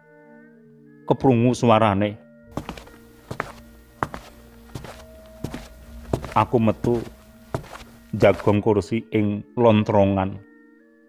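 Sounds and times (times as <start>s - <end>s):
slow hard footsteps: 2.5s - 8.6s
background music drone: 3.0s - 8.2s.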